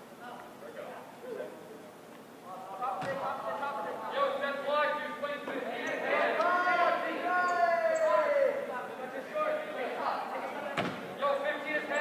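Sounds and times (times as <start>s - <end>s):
indistinct talk and calls: 2.4s - 12.0s.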